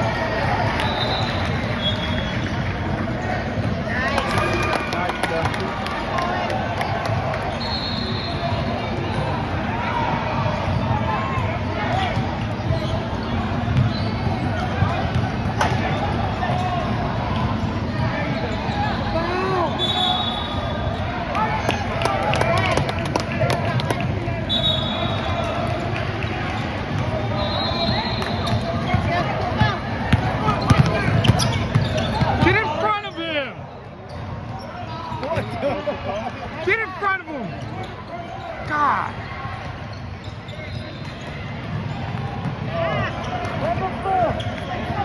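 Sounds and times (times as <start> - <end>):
spectators chattering: 0.0 - 45.0
sneakers squeaking on court: 11.9 - 16.7, 24.6 - 45.0
basketball bouncing on floor: 28.5 - 32.6.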